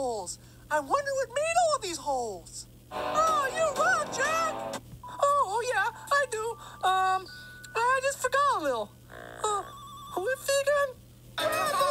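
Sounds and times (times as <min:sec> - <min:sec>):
cartoon voice sliding pitch: 0:03.2 - 0:04.6.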